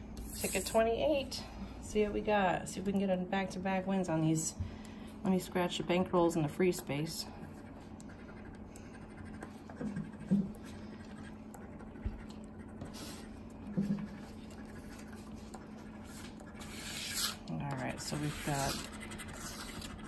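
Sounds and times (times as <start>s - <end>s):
coin scratching a lottery ticket: 16.6s - 20.0s.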